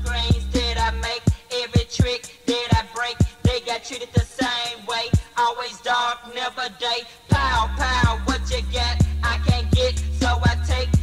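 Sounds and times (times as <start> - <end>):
hip hop vocal line: 0.0 - 11.0.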